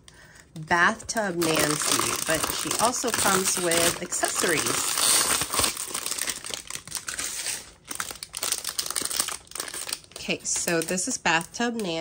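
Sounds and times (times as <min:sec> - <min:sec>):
plastic and foil bags crinkling: 0:00.0 - 0:12.0.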